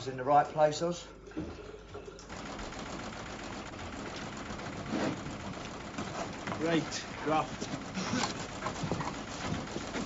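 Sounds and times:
fast mechanical rattle: 0:02.3 - 0:10.0
small engine running: 0:02.4 - 0:10.0.

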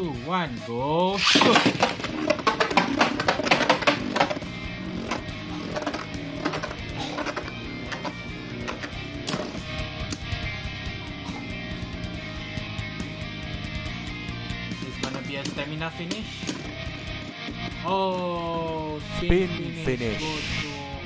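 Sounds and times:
background guitar music: 0:00.0 - 0:21.0.

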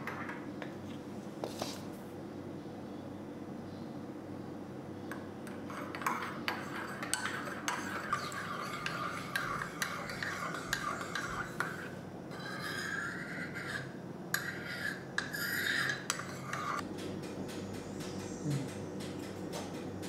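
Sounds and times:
teaspoon stirring in cup: 0:05.5 - 0:16.8.

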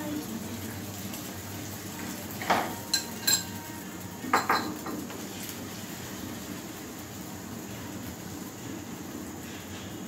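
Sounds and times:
kitchen utensils and dishes clattering: 0:02.0 - 0:03.6, 0:04.3 - 0:05.1.

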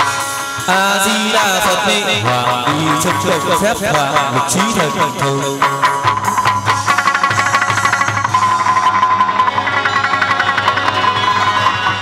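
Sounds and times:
percussion quick even beat: 0:00.0 - 0:12.0
plucked lute: 0:01.7 - 0:12.0.

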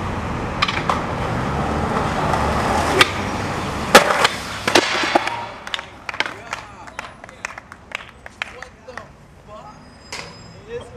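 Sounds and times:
skateboard wheels rolling on concrete: 0:00.0 - 0:09.5
skateboard landing crack: 0:03.9 - 0:06.4.

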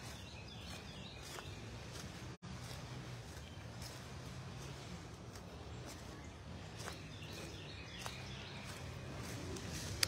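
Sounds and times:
distant bird chirps: 0:00.0 - 0:10.0.

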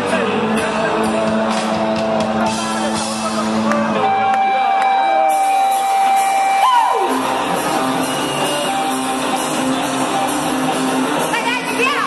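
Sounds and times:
live rock band: 0:00.0 - 0:12.0
crowd cheering: 0:00.2 - 0:12.0.

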